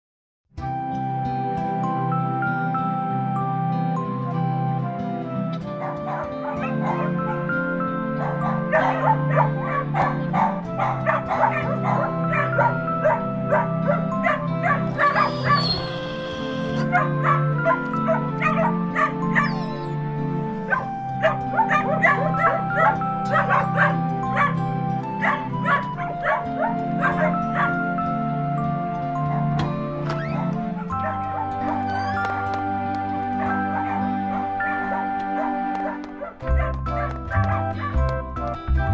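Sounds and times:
soft background music: 0:00.6 - 0:38.9
dogs barking and yipping: 0:05.6 - 0:28.3, 0:29.1 - 0:38.3.

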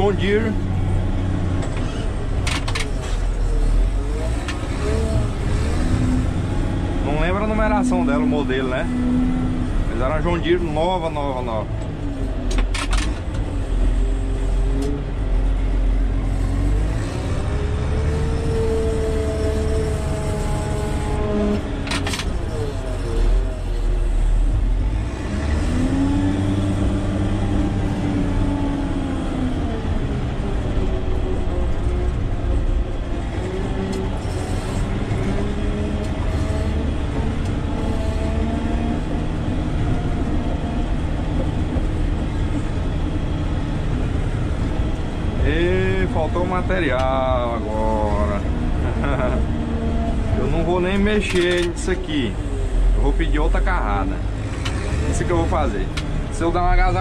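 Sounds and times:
diesel engine working: 0:00.0 - 0:57.0.

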